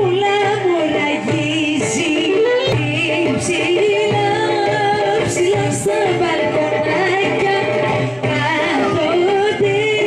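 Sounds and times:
folk music with singer: 0.0s - 10.0s.

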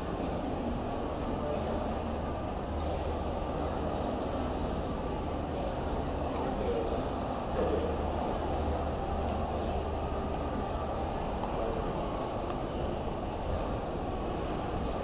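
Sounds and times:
constant low hum: 0.0s - 15.0s.

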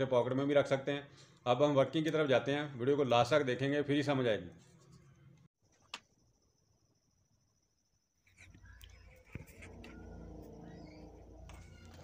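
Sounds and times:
faint animal calls: 8.5s - 12.0s
low hum: 8.5s - 12.0s.

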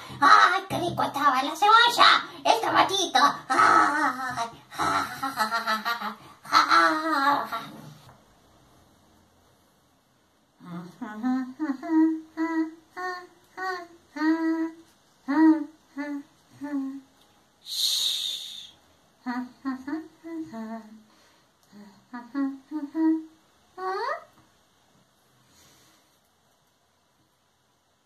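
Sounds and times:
woman humming: 10.6s - 17.1s, 17.7s - 21.0s, 21.6s - 24.4s.

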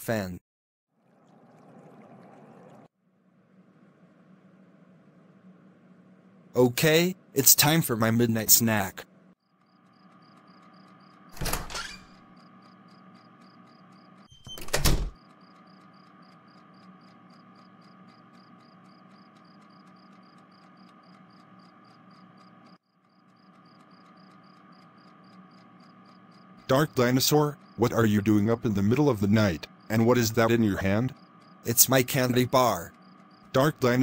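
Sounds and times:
door sound effects: 11.3s - 12.2s, 14.2s - 15.2s, 31.9s - 33.0s.

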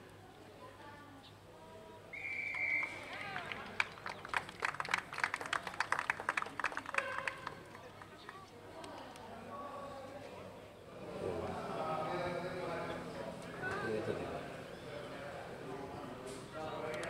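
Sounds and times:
spectators clapping: 2.4s - 9.2s.

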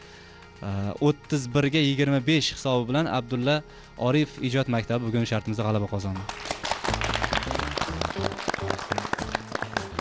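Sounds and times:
audience clapping: 6.1s - 10.0s
show music: 6.2s - 10.0s.

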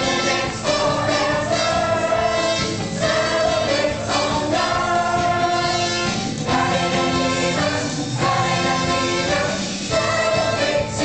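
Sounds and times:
musical accompaniment: 0.0s - 11.0s
young performers singing together: 0.0s - 11.0s.

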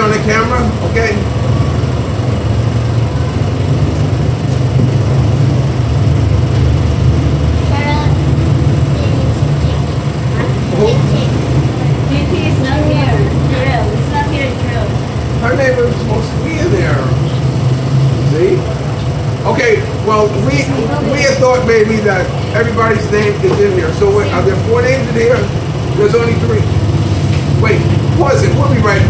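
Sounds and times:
steady low rumble: 0.0s - 29.0s
murmur of voices: 7.6s - 29.0s.

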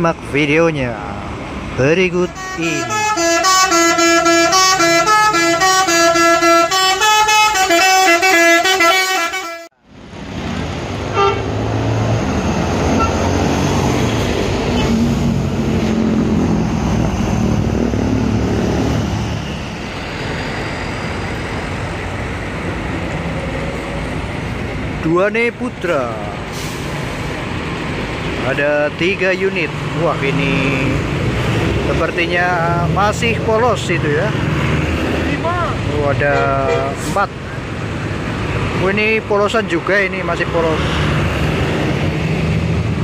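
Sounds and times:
tyres on tarmac: 0.0s - 43.0s
bus driving past: 1.0s - 43.0s.

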